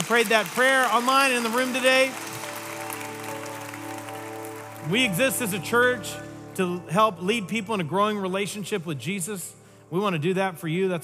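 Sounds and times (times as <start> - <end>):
congregation applauding: 0.0 - 6.6
sustained keyboard chord: 1.6 - 9.3.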